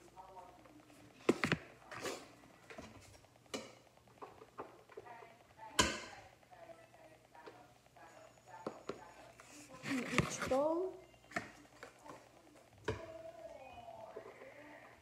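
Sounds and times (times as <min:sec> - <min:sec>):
spoon scraping plastic containers: 0:09.3 - 0:10.7.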